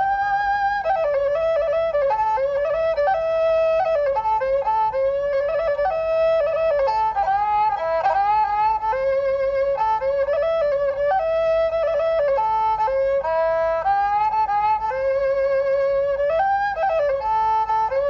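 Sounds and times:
slow traditional melody: 0.0s - 18.0s.

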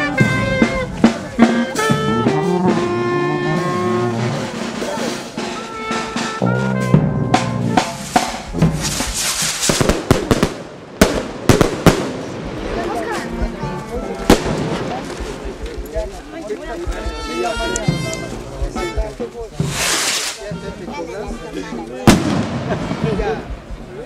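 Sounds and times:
music with held notes: 0.0s - 9.5s, 12.6s - 19.7s
rocket hiss: 7.9s - 12.6s, 19.6s - 20.5s
firework rockets cracking: 7.9s - 13.1s, 14.2s - 15.9s, 19.6s - 20.6s, 22.0s - 23.9s.

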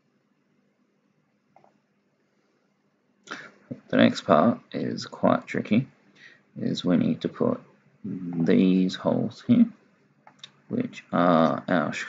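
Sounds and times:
narrator speaking: 3.7s - 5.9s, 6.6s - 9.8s, 10.4s - 12.0s.

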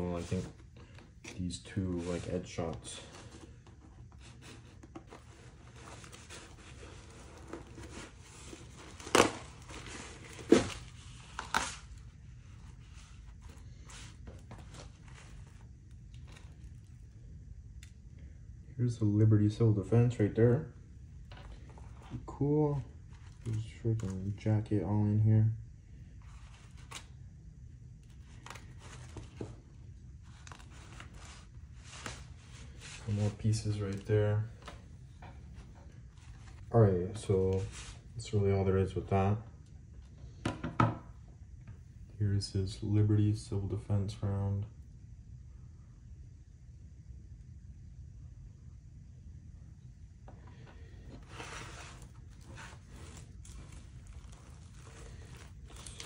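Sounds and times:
fabric scraping and crinkling: 1.9s - 16.9s, 50.9s - 56.0s
fabric rustling and tearing: 5.5s - 12.1s, 51.1s - 56.0s
hands rustling fabric: 50.9s - 56.0s.

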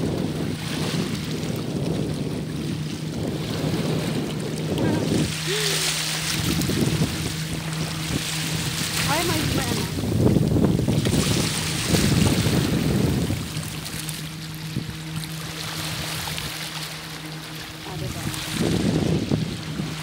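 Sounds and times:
steady low hum: 0.0s - 20.0s
wind buffeting microphone: 0.0s - 20.0s.

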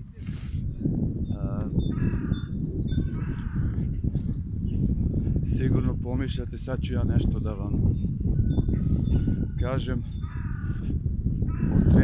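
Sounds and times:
crow cawing: 1.9s - 3.8s, 10.2s - 10.9s, 11.5s - 11.9s.

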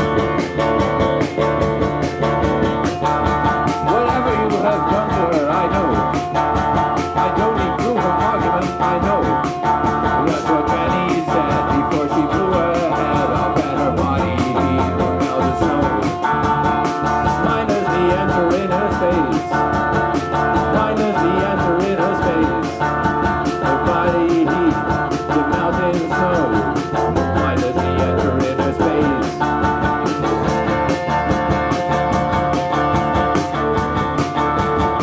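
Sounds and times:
bass guitar: 0.0s - 35.0s
drums: 0.0s - 35.0s
electric guitars: 0.0s - 35.0s
man singing: 3.6s - 6.3s, 6.9s - 30.3s.

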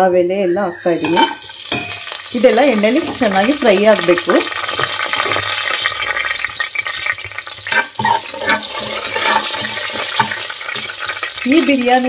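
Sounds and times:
spices sizzling in hot oil: 0.8s - 12.0s.

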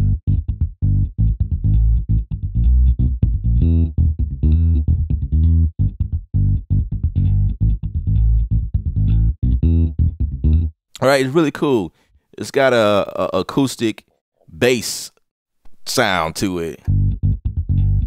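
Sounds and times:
plucked bass line: 0.0s - 10.8s, 16.8s - 18.0s.

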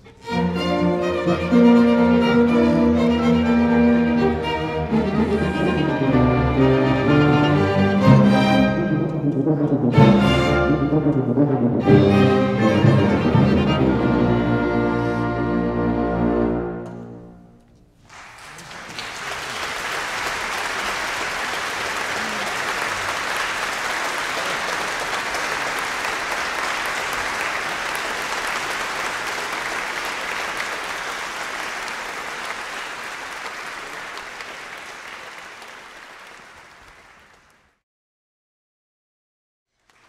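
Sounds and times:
audience applauding: 1.8s - 7.8s, 18.0s - 37.8s, 39.8s - 40.0s.

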